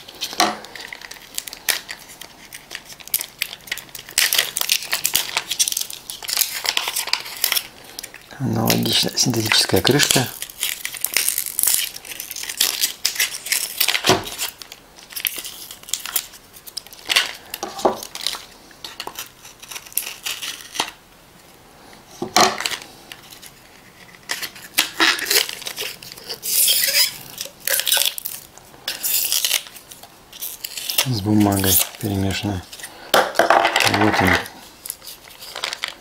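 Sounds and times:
scratchy tearing and crinkling: 0:00.0 - 0:21.0, 0:22.6 - 0:33.0, 0:33.8 - 0:36.0.

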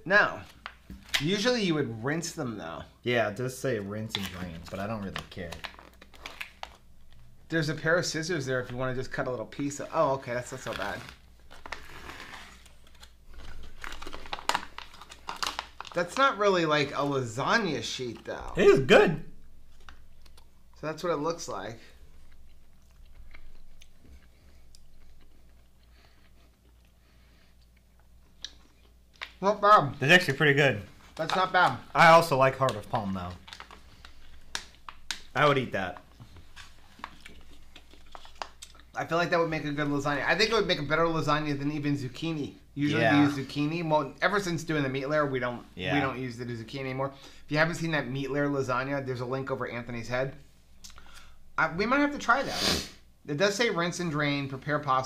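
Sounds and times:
plastic pouch crinkling: 0:04.0 - 0:07.8, 0:08.4 - 0:17.4, 0:30.9 - 0:39.0
sharp crackles: 0:04.0 - 0:18.7, 0:30.1 - 0:38.9
quiet chewing: 0:19.7 - 0:20.7, 0:21.8 - 0:29.4, 0:36.0 - 0:39.0.

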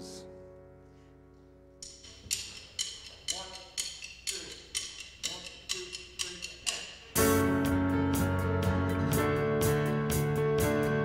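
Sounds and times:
sharp percussive clicks: 0:01.8 - 0:07.2
band playing: 0:07.1 - 0:11.0.

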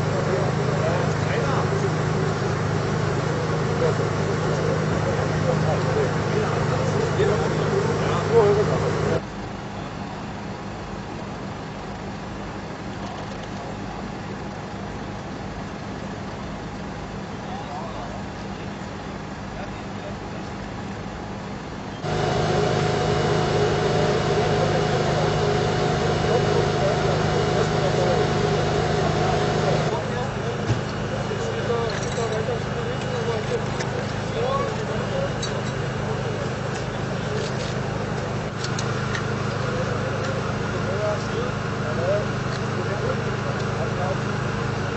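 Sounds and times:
higher steady hum: 0:00.0 - 0:09.2, 0:22.0 - 0:44.9
vehicle engines idling: 0:00.0 - 0:09.2, 0:09.8 - 0:44.9
voices in background: 0:00.0 - 0:09.2, 0:22.0 - 0:44.9.

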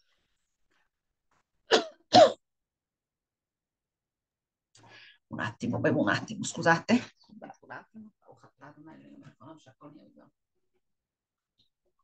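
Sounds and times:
woman coughing: 0:01.7 - 0:02.4.

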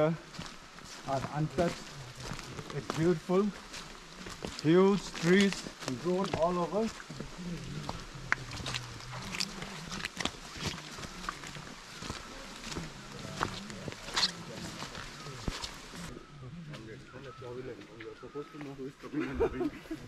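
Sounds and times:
footsteps on stony trail: 0:00.0 - 0:16.2
steady rustling hiss: 0:00.0 - 0:16.4
low voices talking: 0:01.0 - 0:20.0.

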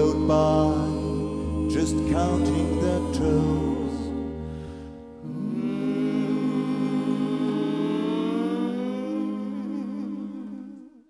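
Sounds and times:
voices singing in harmony: 0:00.0 - 0:11.0.

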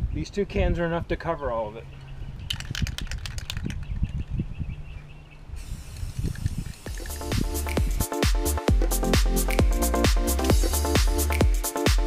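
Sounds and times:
spray can rattling: 0:02.5 - 0:04.0, 0:05.6 - 0:08.6
spray paint hissing: 0:05.6 - 0:11.8
electronic dance music: 0:06.8 - 0:12.0.

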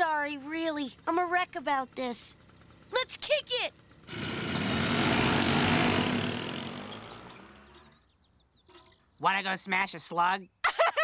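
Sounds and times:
motor scooters driving off: 0:00.0 - 0:08.2.

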